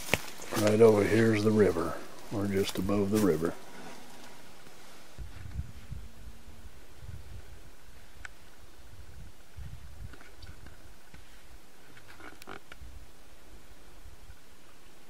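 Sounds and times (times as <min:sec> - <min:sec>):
wind rumbling on microphone: 0:00.0 - 0:14.4.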